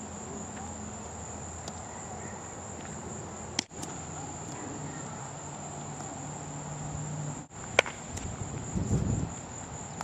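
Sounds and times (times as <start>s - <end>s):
background hiss: 0.0s - 10.0s
insects trilling: 0.0s - 10.0s.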